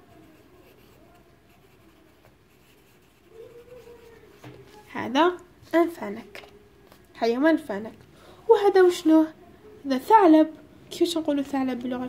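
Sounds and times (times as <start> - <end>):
pencil scratching on paper: 0.0 - 4.9.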